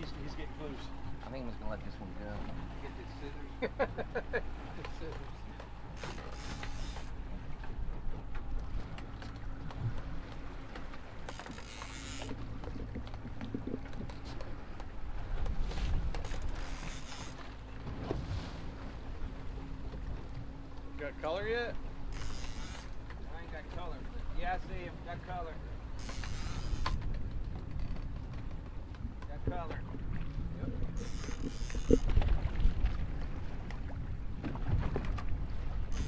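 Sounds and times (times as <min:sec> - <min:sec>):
outboard motors running slowly: 0:00.0 - 0:36.0.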